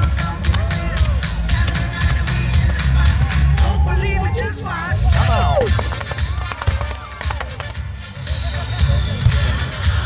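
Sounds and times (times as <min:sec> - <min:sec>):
music playing: 0:00.0 - 0:10.0
fireworks popping and crackling: 0:05.2 - 0:08.5.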